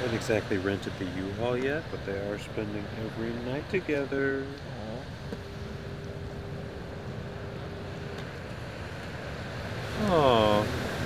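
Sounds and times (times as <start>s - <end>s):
faint steady tone: 0.0s - 11.0s
low beach rumble: 0.0s - 11.0s.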